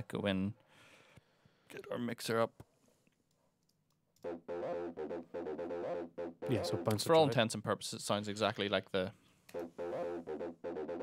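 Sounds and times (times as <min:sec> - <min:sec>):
synthesizer sustained notes: 0:04.2 - 0:07.0, 0:09.6 - 0:11.0.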